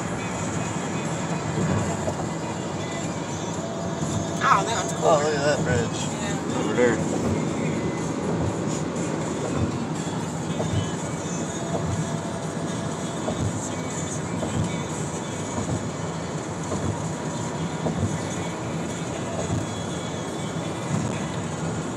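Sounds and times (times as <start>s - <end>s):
road and wind noise in car: 0.0s - 21.9s.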